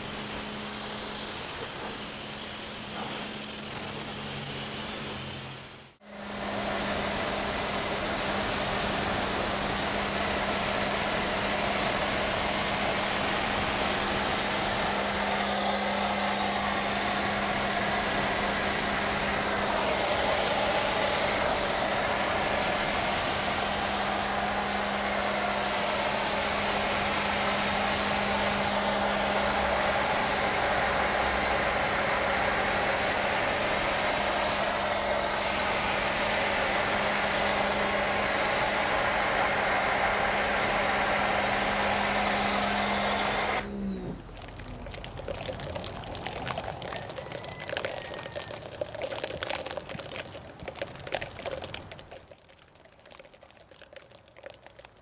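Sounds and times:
hiss of foam spray: 0.0s - 44.2s
pressure washer hum: 0.0s - 52.2s.

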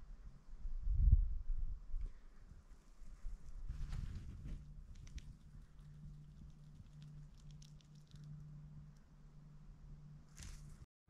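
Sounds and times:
low hum: 0.0s - 10.9s.

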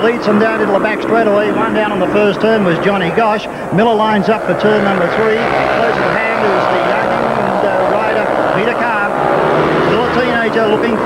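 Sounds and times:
man commentating: 0.0s - 11.0s
motorcycle engines racing: 0.0s - 11.0s.

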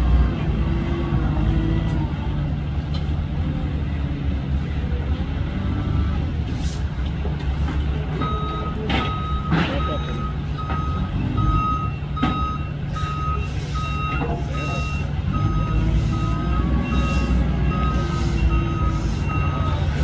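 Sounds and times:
diesel engines running: 0.0s - 20.0s
reversing alarm beeping: 8.2s - 19.8s.

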